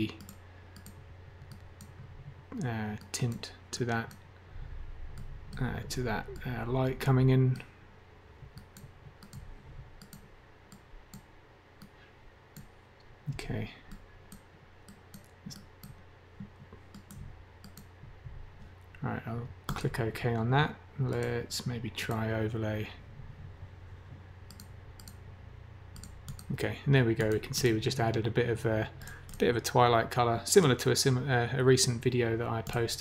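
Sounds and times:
faint low hum: 0:00.0 - 0:33.0
computer mouse clicks: 0:00.1 - 0:03.4, 0:05.1 - 0:05.7, 0:08.5 - 0:12.8, 0:13.9 - 0:18.0, 0:24.5 - 0:25.2, 0:25.9 - 0:26.6, 0:27.2 - 0:27.5, 0:29.0 - 0:29.5.

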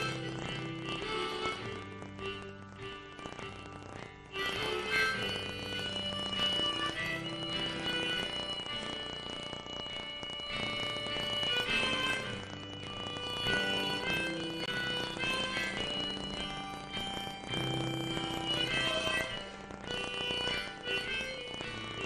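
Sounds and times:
guitar accompaniment: 0:00.0 - 0:22.0
high melody line: 0:00.0 - 0:22.0.

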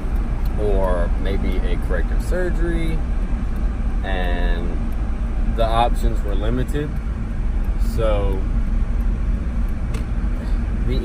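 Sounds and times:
vehicle cabin driving rumble: 0:00.0 - 0:11.0.

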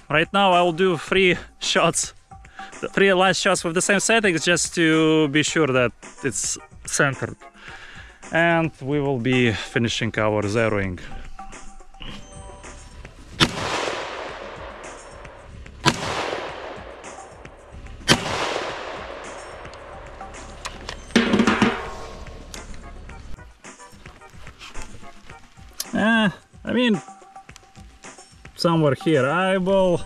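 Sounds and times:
rifle shots with echo: 0:13.4 - 0:22.1.

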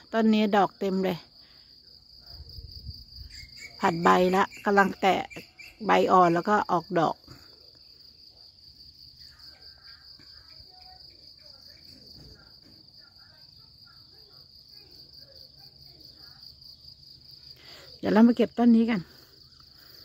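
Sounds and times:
insects trilling: 0:00.0 - 0:20.0.

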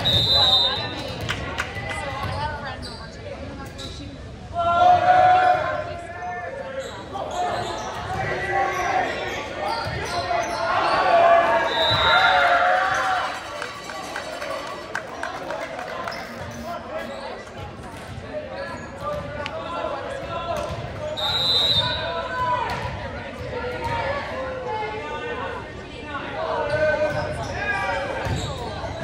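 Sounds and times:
referee's whistle: 0:00.0 - 0:01.0, 0:11.6 - 0:12.4, 0:21.0 - 0:22.2
players and spectators shouting: 0:04.5 - 0:17.4.

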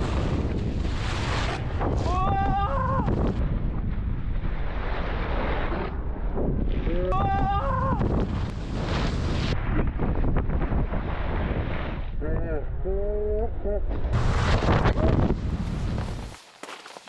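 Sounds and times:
snowboards scraping on snow: 0:00.0 - 0:02.0, 0:08.3 - 0:09.6, 0:10.7 - 0:12.0, 0:14.2 - 0:17.0
wind on microphone: 0:00.0 - 0:04.8, 0:05.7 - 0:16.3
person shouting: 0:02.0 - 0:03.2, 0:07.0 - 0:08.1.

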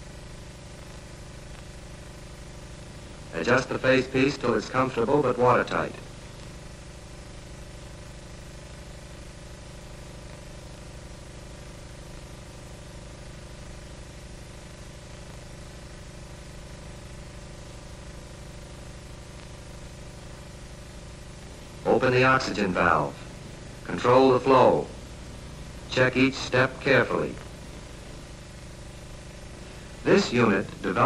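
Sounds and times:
film soundtrack hum and hiss: 0:00.0 - 0:31.0.

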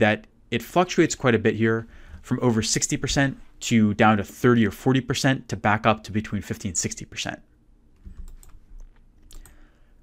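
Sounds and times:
computer keyboard keystrokes: 0:08.0 - 0:09.6.

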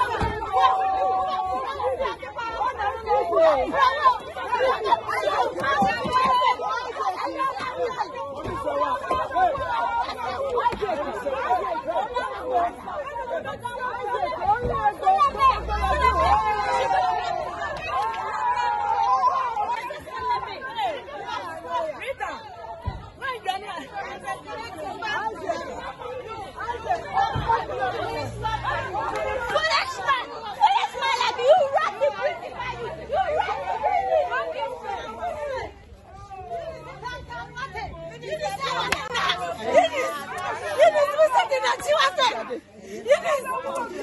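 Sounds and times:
crowd talking and calling out: 0:00.0 - 0:44.0.

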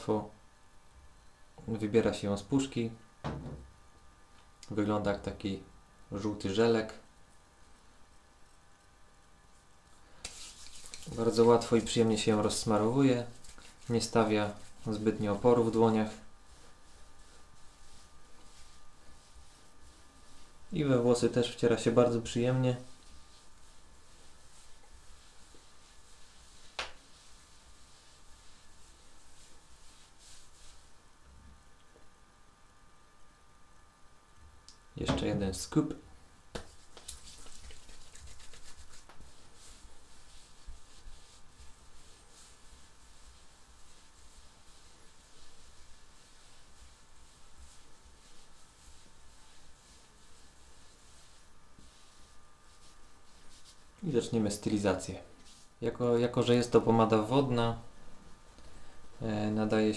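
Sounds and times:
hands rubbing wet pomade: 0:07.8 - 0:31.0, 0:36.5 - 0:55.8.

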